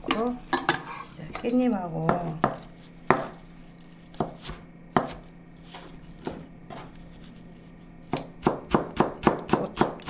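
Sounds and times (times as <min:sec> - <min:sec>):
knife chopping on cutting board: 0:02.1 - 0:03.4, 0:04.1 - 0:07.0, 0:08.1 - 0:10.0.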